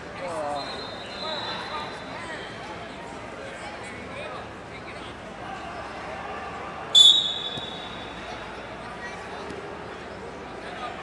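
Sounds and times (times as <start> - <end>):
crowd murmur in a large gym: 0.0 - 11.0
referee's whistle blast: 7.0 - 8.2.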